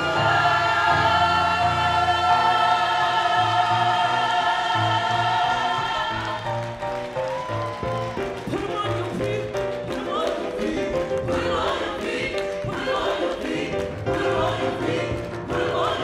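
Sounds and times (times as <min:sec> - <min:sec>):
singer and choir singing with band: 0:00.0 - 0:06.6, 0:09.1 - 0:16.0.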